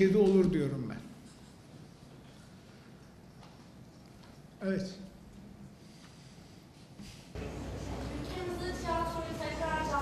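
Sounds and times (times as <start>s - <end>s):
audience rustling: 0.0s - 10.0s.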